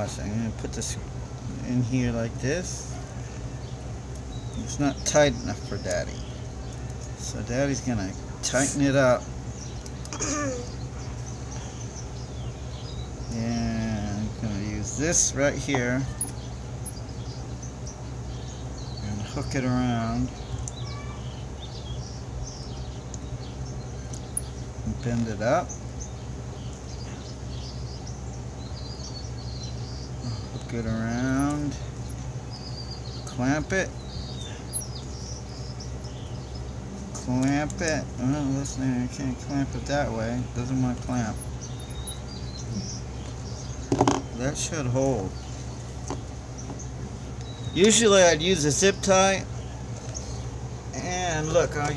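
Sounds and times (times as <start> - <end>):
low background hum: 0.0 - 51.9
bird chirps: 2.9 - 51.9
pliers knocking on wooden table: 43.9 - 44.3.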